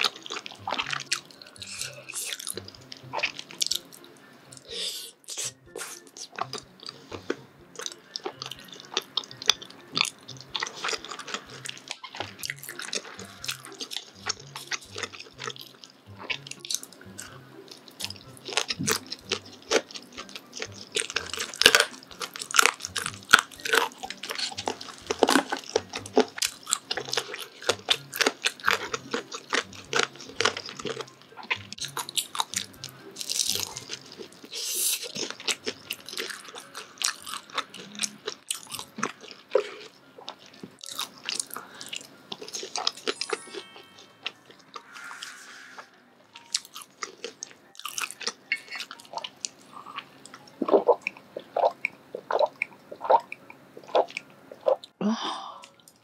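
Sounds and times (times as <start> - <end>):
person chewing: 0.0 - 56.0.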